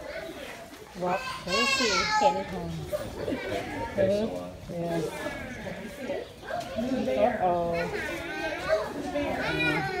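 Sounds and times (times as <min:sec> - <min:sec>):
children's voices: 0:00.0 - 0:10.0
people chattering: 0:00.0 - 0:10.0.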